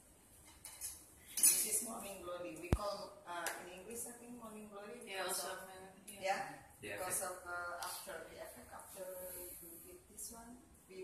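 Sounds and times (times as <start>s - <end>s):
cutlery and dishes clinking: 0.4s - 1.9s.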